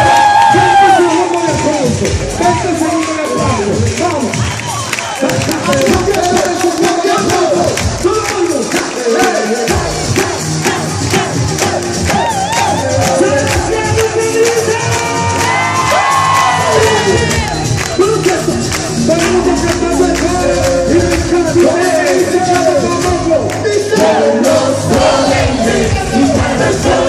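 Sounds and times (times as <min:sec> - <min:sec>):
crowd cheering and shouting: 0:00.0 - 0:27.0
live concert music with beat: 0:00.0 - 0:27.0.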